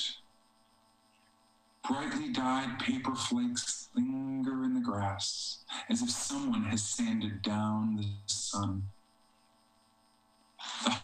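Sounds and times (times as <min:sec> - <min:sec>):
faint steady hum: 0:00.0 - 0:11.0
person speaking: 0:01.8 - 0:08.9, 0:10.6 - 0:11.0.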